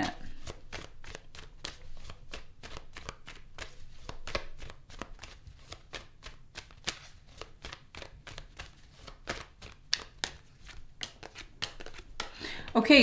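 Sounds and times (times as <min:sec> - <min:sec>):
cards being shuffled by hand: 0:00.0 - 0:12.8.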